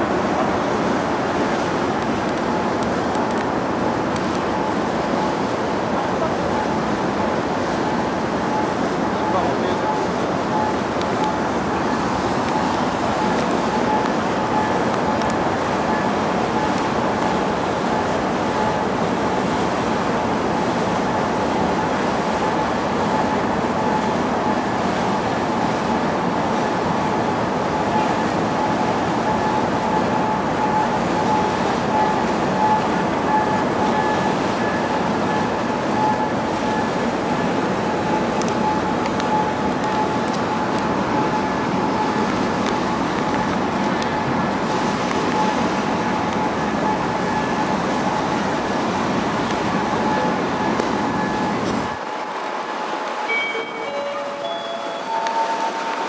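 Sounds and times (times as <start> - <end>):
ship engine hum: 0.0 - 56.0
water rushing past hull: 0.0 - 56.0.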